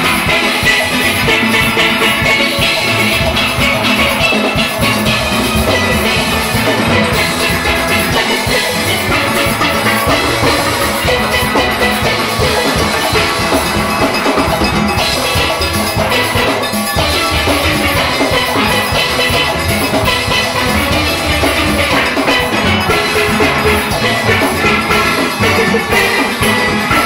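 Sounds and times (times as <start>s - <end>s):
drum kit: 0.0s - 27.0s
steel pans playing: 0.0s - 27.0s.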